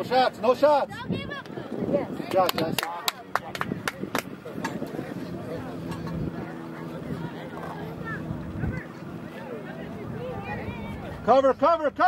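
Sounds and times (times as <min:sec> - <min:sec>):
distant shouting and voices: 0:00.0 - 0:12.0.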